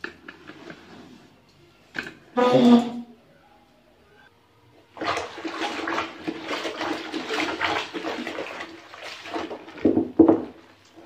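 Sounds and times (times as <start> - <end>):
clothes scrubbed in soapy water: 4.9 - 11.0.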